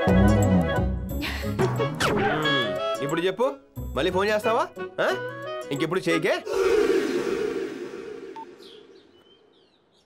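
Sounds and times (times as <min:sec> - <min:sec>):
birds chirping faintly: 0:07.4 - 0:10.0.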